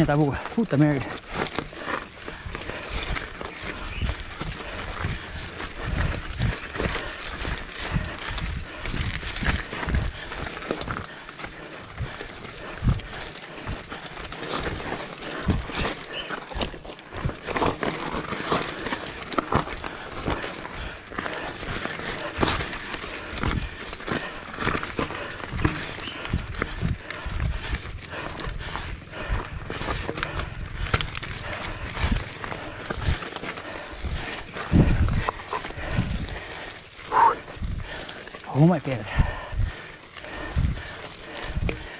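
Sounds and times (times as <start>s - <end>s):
bike rattling: 0.0s - 41.9s
tyres crunching on rocks: 0.0s - 41.9s.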